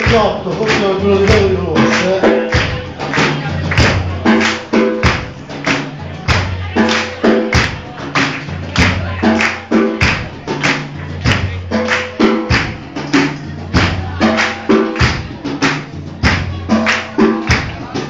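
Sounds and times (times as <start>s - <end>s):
live band playing instrumental: 0.0s - 18.0s.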